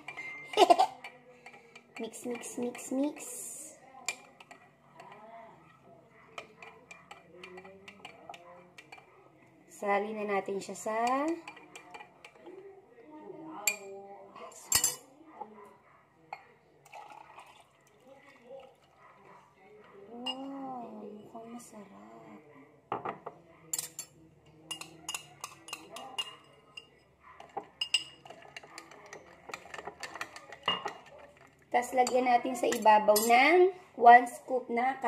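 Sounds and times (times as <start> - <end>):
metal spoon clinking glass: 0.0 - 2.9, 6.3 - 9.2, 11.0 - 12.6, 14.6 - 15.0, 22.9 - 33.4
drink being poured: 16.8 - 19.0.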